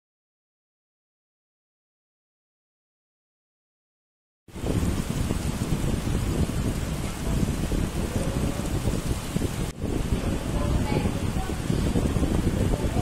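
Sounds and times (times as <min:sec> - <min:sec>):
heavy rain falling: 0:04.5 - 0:13.0.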